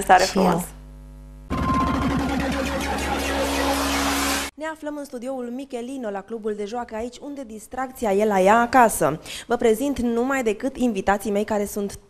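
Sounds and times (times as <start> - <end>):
busy children's tv jingle: 1.5 - 4.5.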